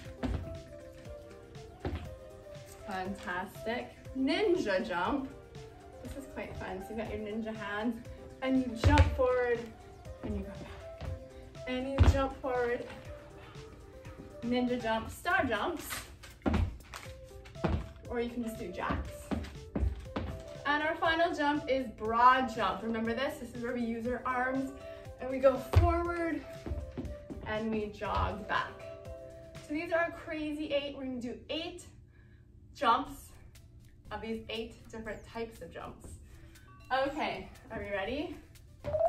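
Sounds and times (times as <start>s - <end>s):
feet thudding on wooden floor: 0.0s - 0.8s, 1.8s - 2.2s, 11.8s - 12.4s, 18.8s - 20.5s
background music: 0.0s - 31.2s, 32.8s - 39.0s
feet landing on wooden floor: 0.1s - 0.6s, 1.8s - 2.1s.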